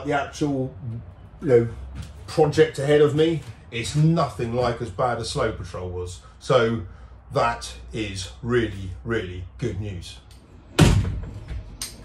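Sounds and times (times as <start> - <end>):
heavy thump: 10.8 - 11.7.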